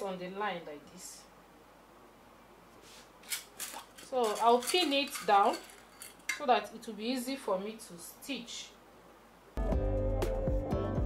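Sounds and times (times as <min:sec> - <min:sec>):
fabric rustling and scraping: 0:02.8 - 0:06.3.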